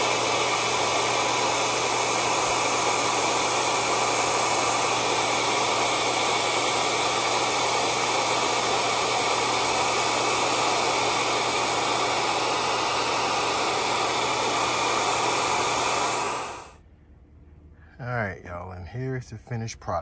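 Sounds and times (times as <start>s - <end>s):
hair dryer blowing: 0.0s - 16.8s.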